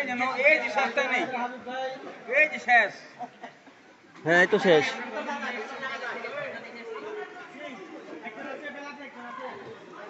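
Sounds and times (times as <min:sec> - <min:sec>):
overlapping indistinct chatter: 0:00.0 - 0:10.0.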